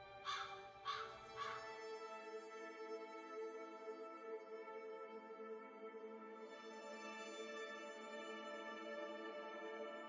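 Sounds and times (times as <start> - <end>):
ambient music with held tones: 0.0 - 10.0
crow cawing: 0.2 - 1.8.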